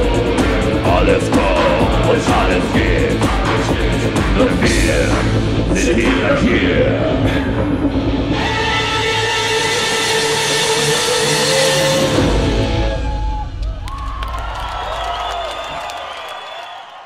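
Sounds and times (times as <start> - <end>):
rock band held chord: 0.0 - 12.9
crowd cheering and whistling: 12.2 - 17.0.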